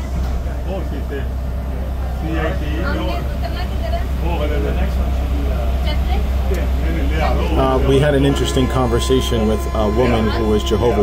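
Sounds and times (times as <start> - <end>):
underground train rumbling in tunnel: 0.0 - 11.0.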